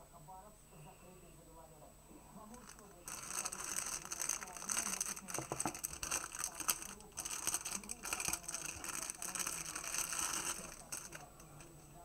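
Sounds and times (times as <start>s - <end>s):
plastic bag crinkling and tearing: 2.5s - 11.4s.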